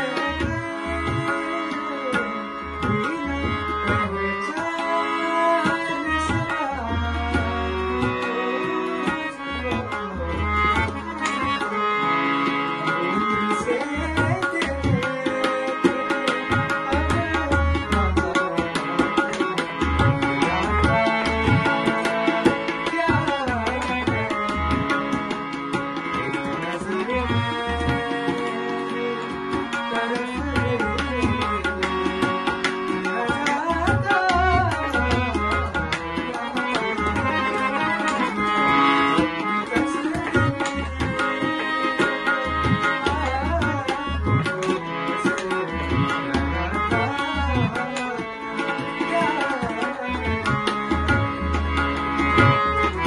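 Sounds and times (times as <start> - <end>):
harmonium playing chords: 0.0 - 53.0.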